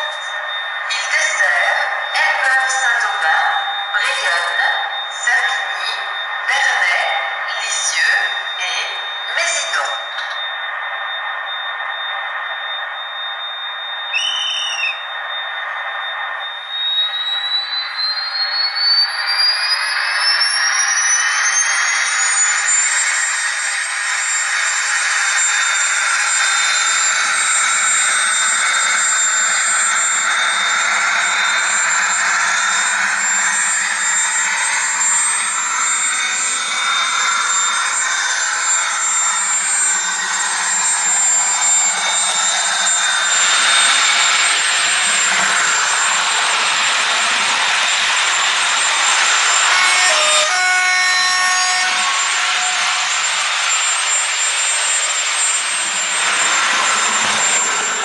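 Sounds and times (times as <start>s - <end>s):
model train turbine whine: 0.0s - 58.0s
train running noise: 0.0s - 58.0s.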